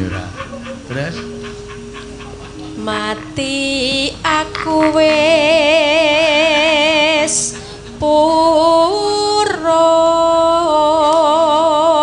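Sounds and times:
gamelan held notes: 0.0 - 9.4.

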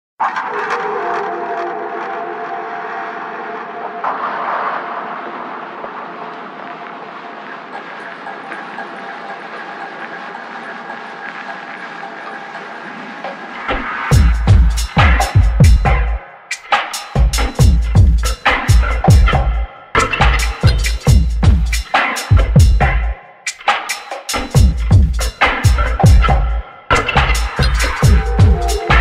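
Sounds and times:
steady running ambient noise: 2.5 - 14.5
thin high whine: 27.6 - 29.0
held tones: 27.7 - 29.0.

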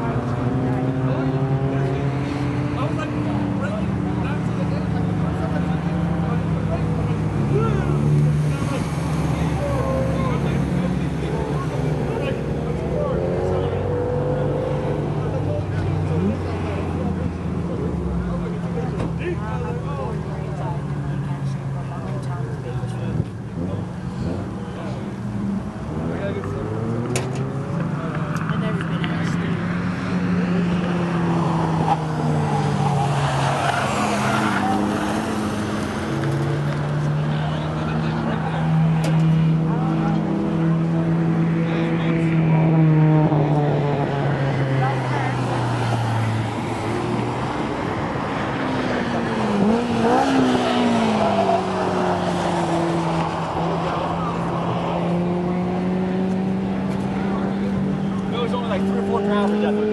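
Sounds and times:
race car engines: 0.0 - 59.9.

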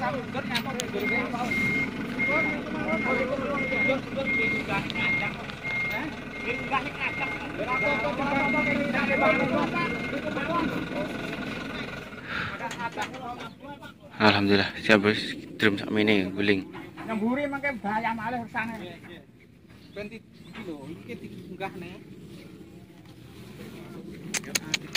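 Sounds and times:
truck reversing alarm beeping: 0.0 - 13.1.

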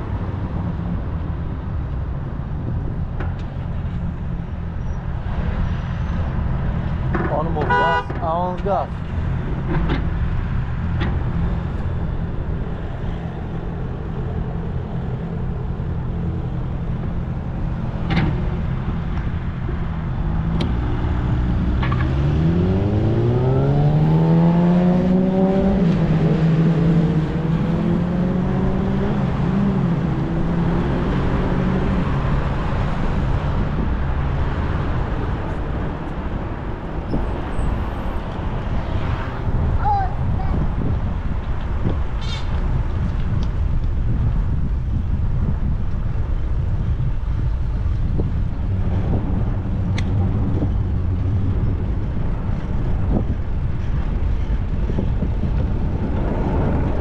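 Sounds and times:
city road traffic: 0.0 - 57.0
car engine accelerating: 20.1 - 36.4.

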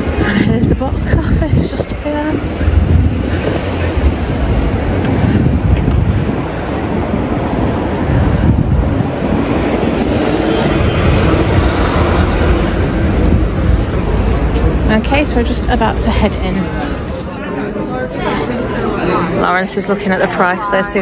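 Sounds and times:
bus rumbling: 0.0 - 21.0
road traffic: 0.0 - 21.0.

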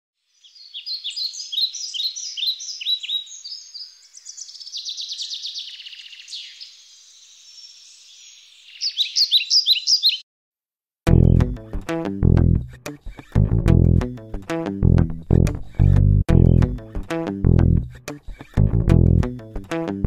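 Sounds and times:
birds chirping: 0.4 - 10.2
bird trilling: 0.6 - 6.7, 8.6 - 10.2.

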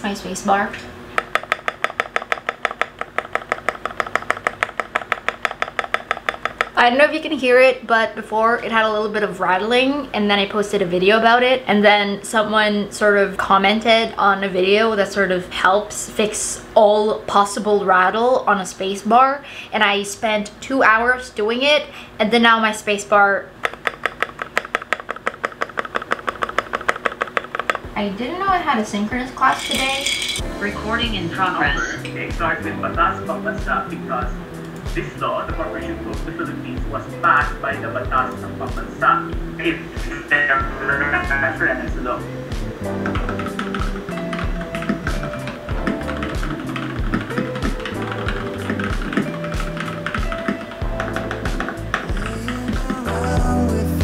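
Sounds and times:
fast mechanical keyboard typing: 1.2 - 6.8, 23.6 - 27.9, 42.9 - 53.0
background music with bass line: 30.4 - 54.0.

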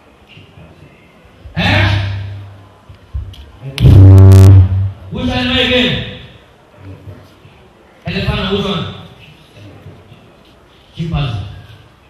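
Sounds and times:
man bellowing into microphone: 1.6 - 2.4.

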